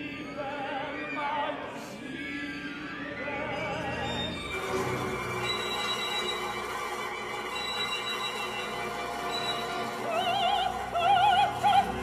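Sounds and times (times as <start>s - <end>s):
orchestral music with held tones: 0.0s - 12.0s.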